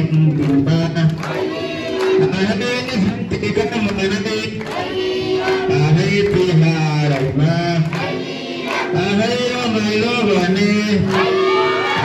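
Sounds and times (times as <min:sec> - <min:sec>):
group singing call-and-response: 0:00.1 - 0:12.0.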